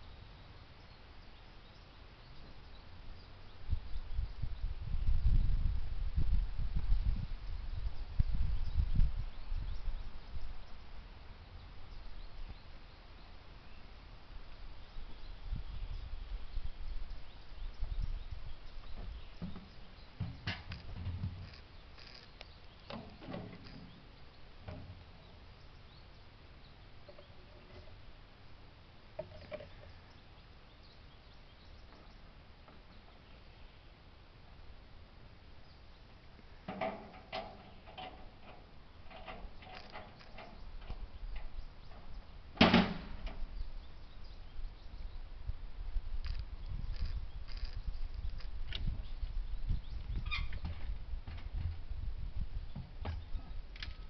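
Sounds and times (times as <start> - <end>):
metal clunks and knocks: 19.0 - 21.6, 22.9 - 24.0, 24.6 - 25.0, 36.7 - 43.4.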